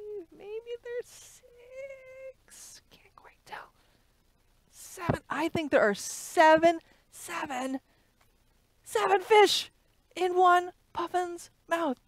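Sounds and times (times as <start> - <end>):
woman humming: 0.0 - 2.8
woman whispering: 0.0 - 3.8.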